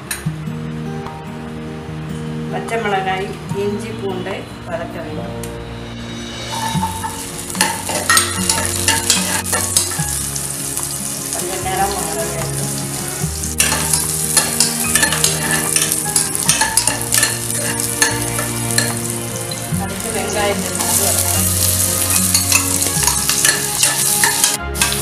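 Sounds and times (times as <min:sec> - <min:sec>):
oil sizzling in a pot: 0:05.8 - 0:25.0
metal spoon scraping a pan: 0:06.4 - 0:10.2, 0:13.4 - 0:19.6, 0:20.8 - 0:25.0.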